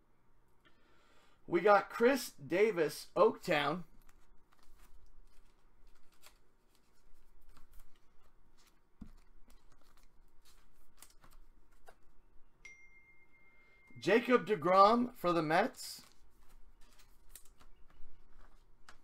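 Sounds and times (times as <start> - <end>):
cards rustling: 3.4 - 12.3, 14.7 - 19.0
faint high tone: 12.6 - 14.8.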